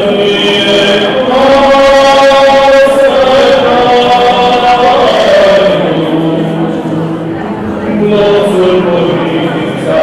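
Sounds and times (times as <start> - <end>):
male vocal group singing in harmony: 0.0 - 7.0, 7.8 - 10.0.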